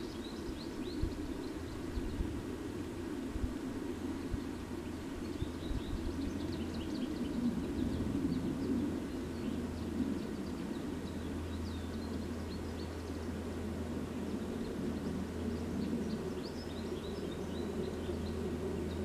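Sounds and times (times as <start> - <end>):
low background rumble: 0.0 - 19.0
songbirds chirping: 0.0 - 19.0.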